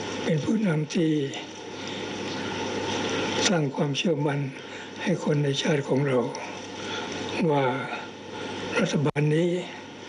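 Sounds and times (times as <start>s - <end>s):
man speaking into a microphone: 0.3s - 1.5s, 3.4s - 6.6s, 8.8s - 9.8s.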